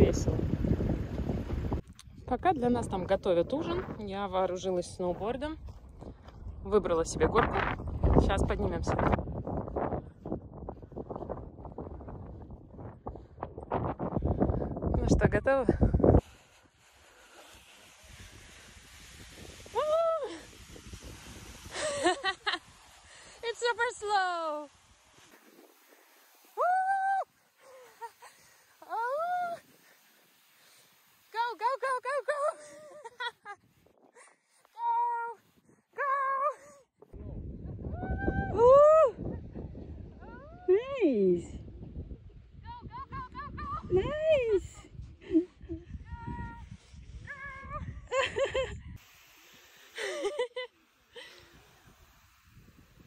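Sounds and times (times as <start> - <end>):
wind rumble on microphone: 0.0 - 16.6, 18.0 - 23.0, 37.1 - 49.0, 51.6 - 53.0
woman whining and yelping: 26.6 - 28.0, 28.8 - 29.6, 36.0 - 36.8
woman vocalizing squeals: 26.6 - 28.1, 28.8 - 29.6.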